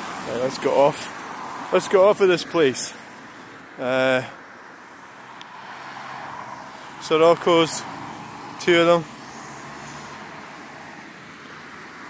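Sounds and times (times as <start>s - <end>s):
car driving past: 5.2s - 12.0s.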